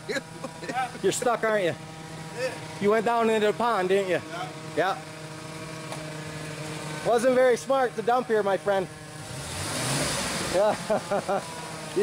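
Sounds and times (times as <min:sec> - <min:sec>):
truck engine revving: 0:00.0 - 0:12.0.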